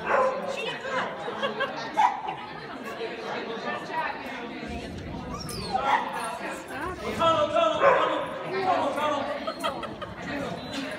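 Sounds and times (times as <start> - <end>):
dog barking: 0.0 - 0.5, 7.8 - 8.2
people chattering: 0.0 - 10.9.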